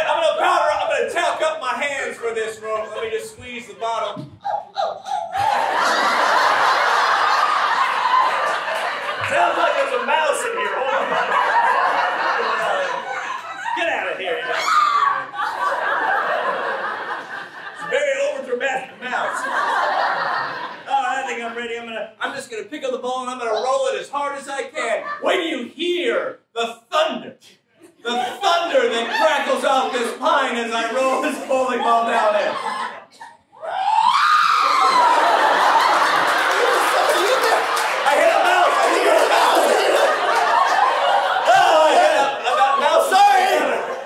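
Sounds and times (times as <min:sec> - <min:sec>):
audience crowd noise: 0:02.1 - 0:21.4, 0:33.6 - 0:44.0
performer yelling wordlessly: 0:38.0 - 0:40.2, 0:41.3 - 0:44.0.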